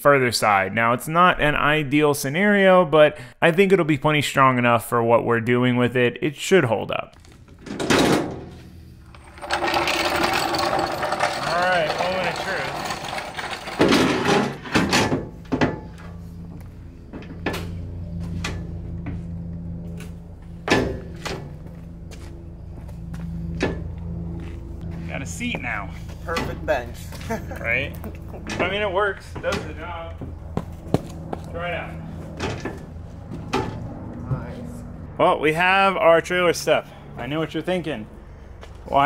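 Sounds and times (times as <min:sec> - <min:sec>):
floor jack scraping and clanking: 0:07.6 - 0:16.4.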